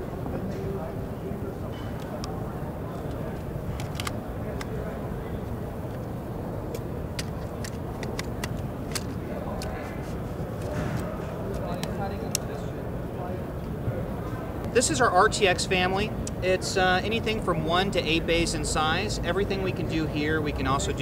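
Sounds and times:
crowd babble: 0.0s - 21.0s.

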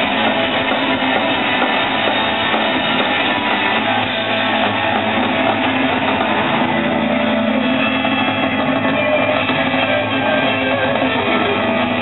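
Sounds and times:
distorted electric guitars: 0.0s - 12.0s
drums: 0.0s - 12.0s.

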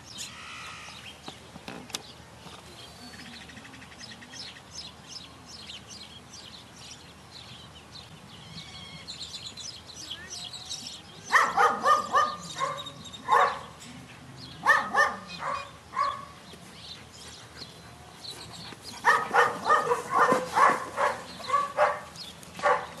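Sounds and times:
dog barking: 11.3s - 13.7s, 14.6s - 16.3s, 19.0s - 23.0s.

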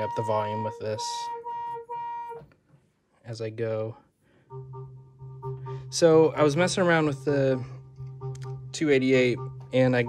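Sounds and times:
synthesizer pulsing tone: 4.5s - 10.0s.

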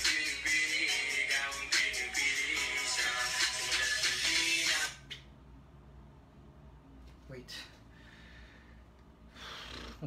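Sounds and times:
low room hum: 0.0s - 10.0s
breathy exhale: 7.9s - 10.0s.

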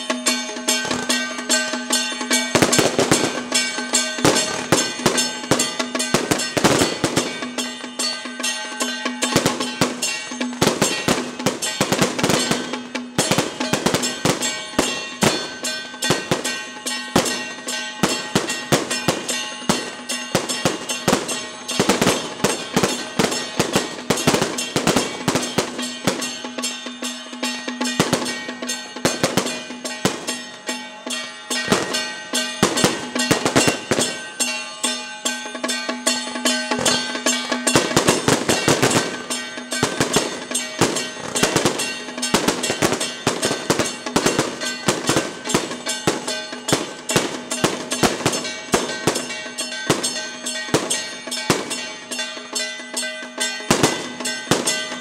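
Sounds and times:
cymbals clashing: 0.0s - 55.0s
drum beating: 0.0s - 55.0s
hand gongs clanging: 0.0s - 55.0s
steady ringing tone: 0.0s - 55.0s.

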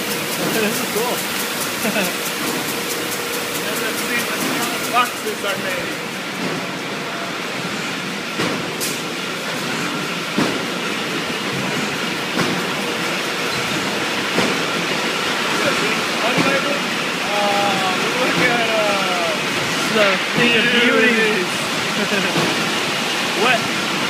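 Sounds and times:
bottling machinery din: 0.0s - 24.0s.

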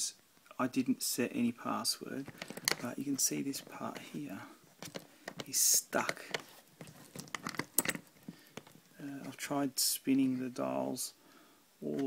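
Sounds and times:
combination lock dials clicking: 4.8s - 8.8s.

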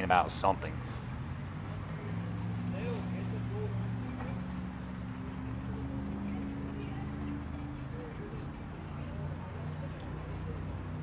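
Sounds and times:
boat engine idling: 0.0s - 11.0s
faint distant voices: 0.0s - 11.0s.

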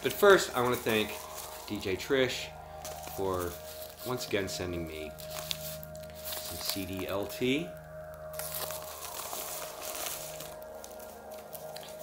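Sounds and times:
faint steady tone: 0.0s - 12.0s
low hum: 0.0s - 12.0s.

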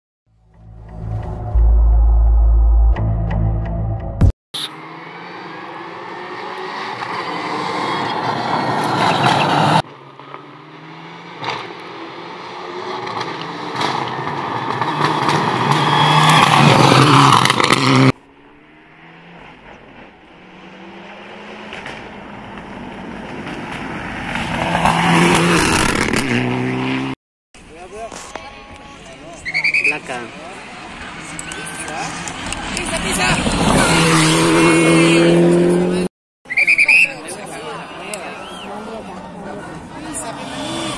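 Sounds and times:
rally car engines accelerating: 4.7s - 27.2s, 30.3s - 36.1s, 37.4s - 40.9s.

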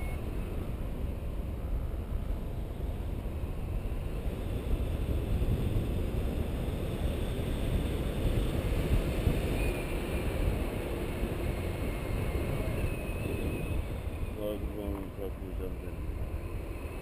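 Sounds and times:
wind buffeting microphone: 0.2s - 17.0s.

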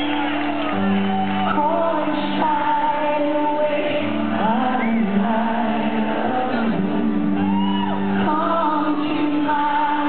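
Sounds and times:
audience whooping and shouting: 0.0s - 2.0s, 7.3s - 8.5s.

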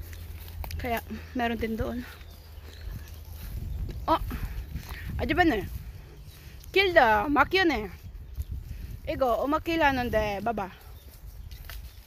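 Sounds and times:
footsteps through undergrowth: 0.0s - 12.0s.

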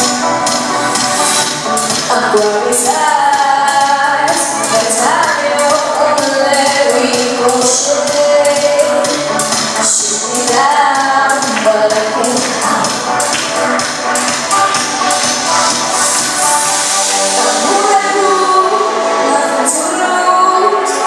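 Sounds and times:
pop backing track with beat: 0.0s - 21.0s
woman singing into microphone: 2.0s - 13.3s, 16.4s - 21.0s.

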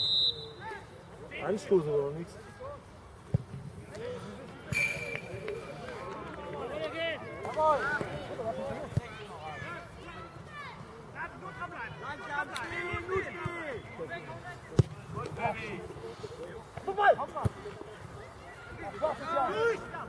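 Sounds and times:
ball being kicked: 14.7s - 15.0s.

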